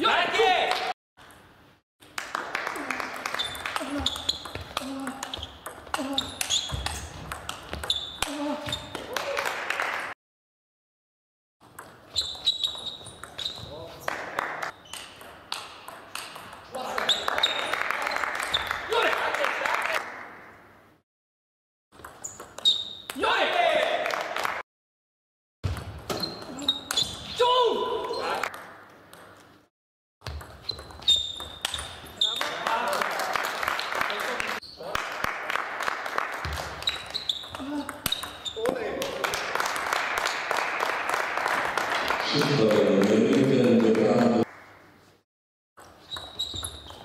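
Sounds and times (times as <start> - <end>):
short high squeaks: 6.2 - 7.1, 12.1 - 13.8, 22.2 - 23.1, 30.6 - 32.6, 36.8 - 38.6, 46.0 - 47.0.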